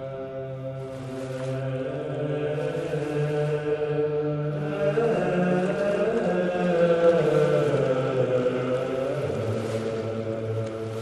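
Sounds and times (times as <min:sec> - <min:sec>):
slow chanting voices: 0:00.0 - 0:11.0
steady low drone: 0:00.0 - 0:11.0.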